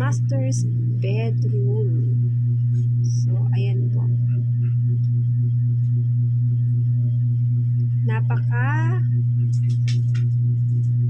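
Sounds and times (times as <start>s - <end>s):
loud steady low hum: 0.0s - 11.0s.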